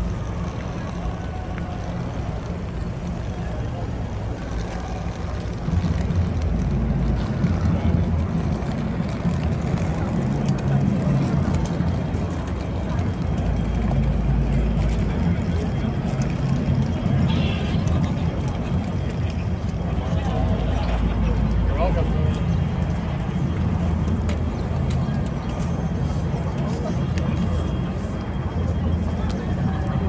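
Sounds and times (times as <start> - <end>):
faint voices of passers-by: 0.0 - 30.0
low street rumble: 0.0 - 30.0.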